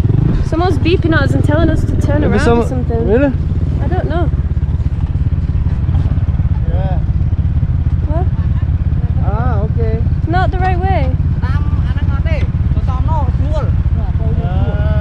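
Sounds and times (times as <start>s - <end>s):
motorbike engines rumbling: 0.0s - 15.0s
motorbike riding up and stopping: 0.0s - 15.0s.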